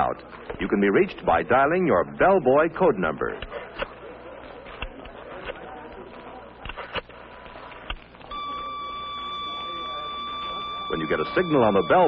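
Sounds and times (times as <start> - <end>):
pager steady tone: 8.1 - 12.0.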